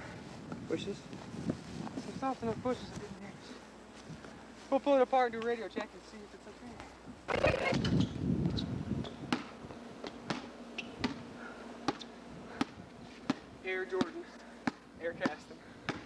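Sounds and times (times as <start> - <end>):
basketball bouncing on concrete: 9.3 - 11.2, 11.9 - 16.0.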